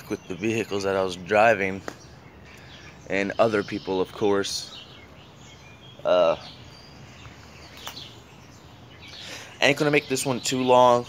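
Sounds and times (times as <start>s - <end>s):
distant bird chirps: 0.0s - 11.0s
faint outdoor background noise: 0.0s - 11.0s.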